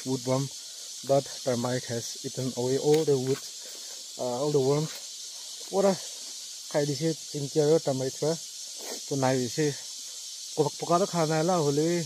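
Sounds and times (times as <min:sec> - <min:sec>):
man speaking: 0:00.0 - 0:03.6, 0:04.2 - 0:05.0, 0:05.6 - 0:09.9, 0:10.6 - 0:12.0
jungle insects droning: 0:00.0 - 0:12.0.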